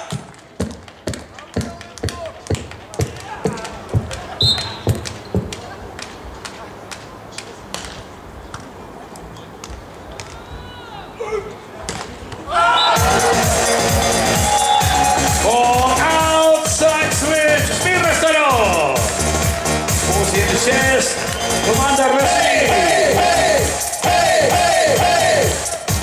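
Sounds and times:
referee's whistle: 0:04.4 - 0:05.0, 0:12.7 - 0:13.2, 0:14.4 - 0:15.1, 0:21.1 - 0:22.4
arena music: 0:12.7 - 0:26.0.

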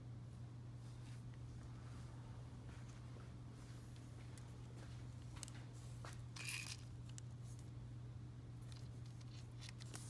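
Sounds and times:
steady low hum: 0:00.0 - 0:10.0
rustle of items handled: 0:08.6 - 0:10.0.

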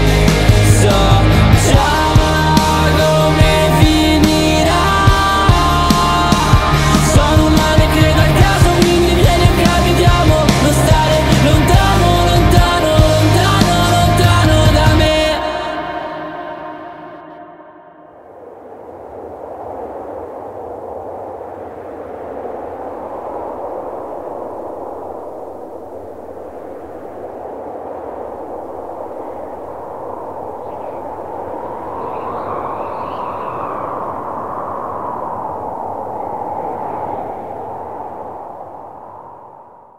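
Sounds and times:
rushing filtered noise: 0:00.0 - 0:39.9.

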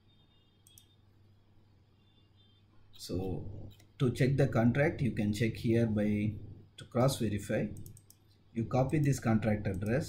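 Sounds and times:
low steady hum: 0:00.0 - 0:10.0
computer mouse clicks: 0:00.6 - 0:01.0, 0:07.7 - 0:08.4.

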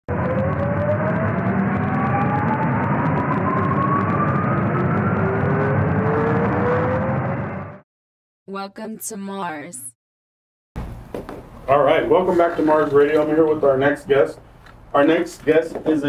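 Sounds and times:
synthesized rising rumble: 0:00.1 - 0:07.8.

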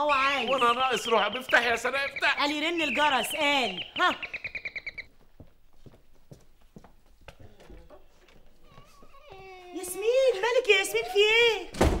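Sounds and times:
footsteps on a hard floor: 0:05.1 - 0:09.7.

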